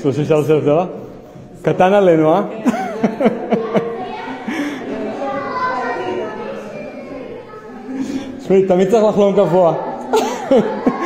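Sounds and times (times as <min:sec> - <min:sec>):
overlapping voices talking: 0:02.4 - 0:11.0.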